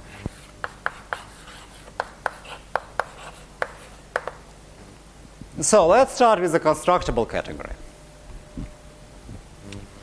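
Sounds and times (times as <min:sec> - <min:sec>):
chalk scraping: 0:00.0 - 0:04.1
chalk tapping on chalkboard: 0:00.2 - 0:04.4.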